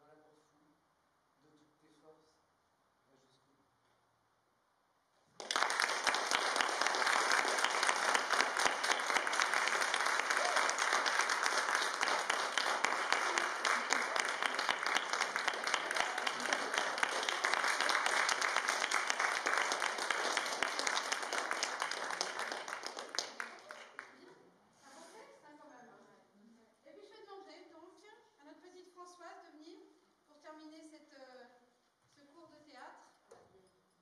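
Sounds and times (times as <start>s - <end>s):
audience applause: 5.4s - 24.2s.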